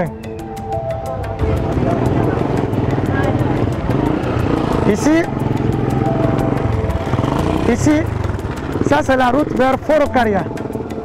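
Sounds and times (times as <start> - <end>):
motorcycle engines running: 0.0 - 11.0
people talking: 1.8 - 3.8, 8.9 - 10.5.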